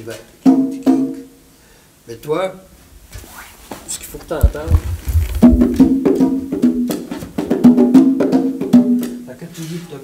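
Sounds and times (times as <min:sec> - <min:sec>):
conga drums played by hand: 0:00.4 - 0:01.3, 0:04.3 - 0:09.4.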